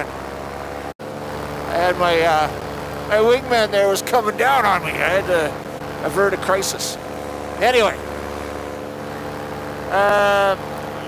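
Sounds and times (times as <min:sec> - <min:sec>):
paramotor engine droning: 0:00.0 - 0:11.0.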